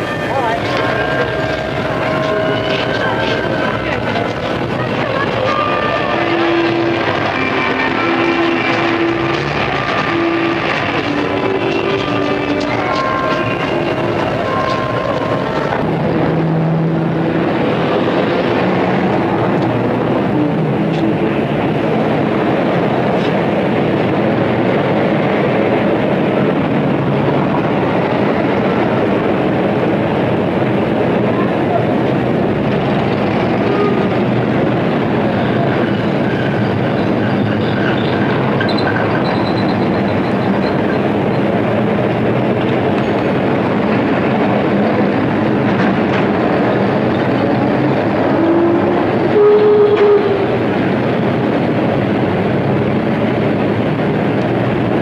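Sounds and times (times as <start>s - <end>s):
street traffic din: 0.0s - 55.0s
train running overhead: 0.0s - 55.0s.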